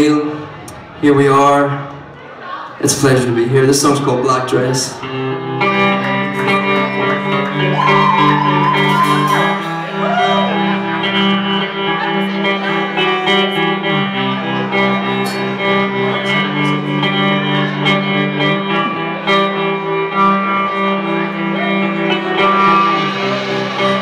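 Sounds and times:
electric guitar chords: 4.6s - 24.0s
drums: 6.2s - 12.3s, 21.5s - 24.0s.

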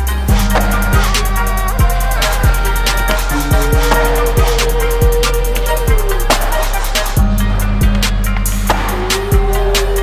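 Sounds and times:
music with drum beat: 0.1s - 10.0s.

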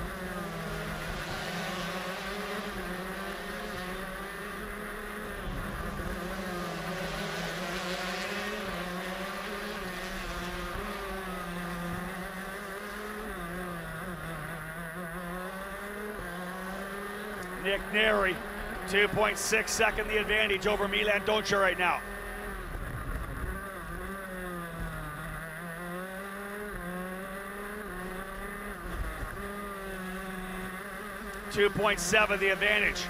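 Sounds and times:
two-stroke kart engine at speed: 0.0s - 33.0s.

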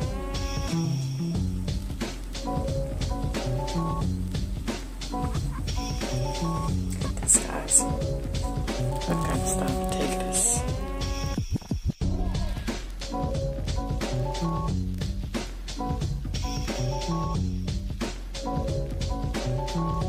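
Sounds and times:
music with beat and bass line: 0.0s - 20.0s.

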